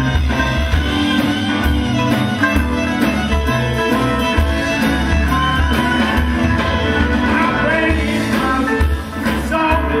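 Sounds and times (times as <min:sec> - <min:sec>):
bass notes: 0:00.0 - 0:10.0
electric guitar: 0:00.0 - 0:10.0
fiddle lead: 0:00.0 - 0:10.0.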